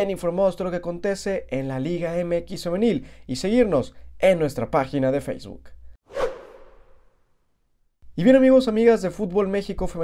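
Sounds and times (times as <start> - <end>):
whoosh swish: 6.1 - 7.2.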